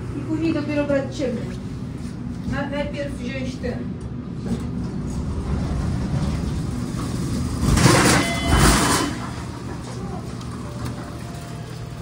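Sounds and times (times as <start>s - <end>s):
elevator low hum: 0.0s - 12.0s
rushing noise with high tones: 1.7s - 10.3s.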